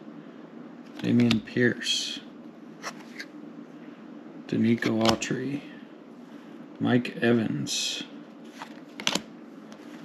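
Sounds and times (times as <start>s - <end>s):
cards sliding across each other: 2.8s - 3.3s.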